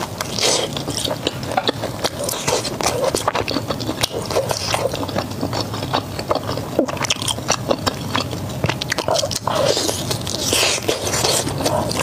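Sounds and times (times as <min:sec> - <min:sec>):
wet chewing with mouth clicks: 0:00.0 - 0:12.0.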